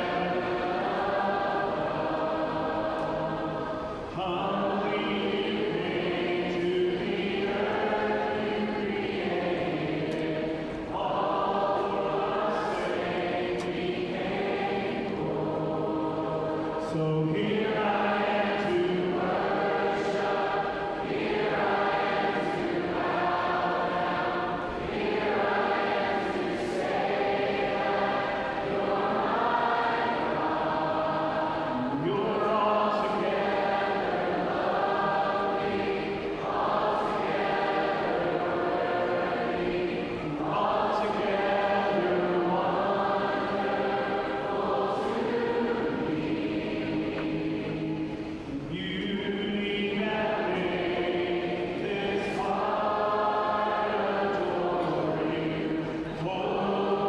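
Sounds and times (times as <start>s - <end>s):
congregation singing: 0.0s - 57.0s.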